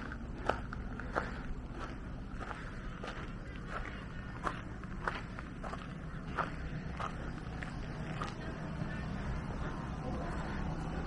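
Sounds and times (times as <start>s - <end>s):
footsteps of person walking: 0.0s - 11.0s
steady low rumble: 0.0s - 11.0s.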